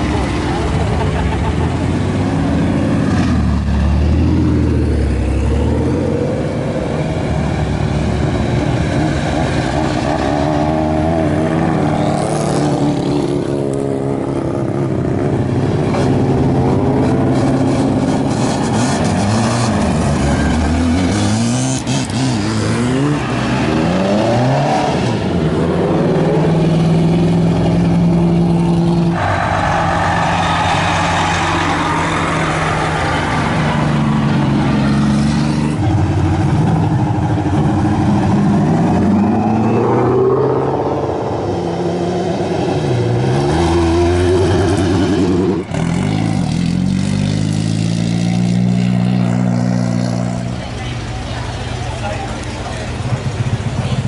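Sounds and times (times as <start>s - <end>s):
race cars revving past: 0.0s - 51.1s.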